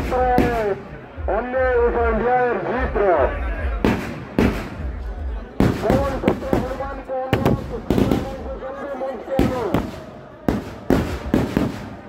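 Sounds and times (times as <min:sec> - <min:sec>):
firecrackers banging: 0:00.0 - 0:01.0, 0:03.8 - 0:08.6, 0:09.3 - 0:12.0.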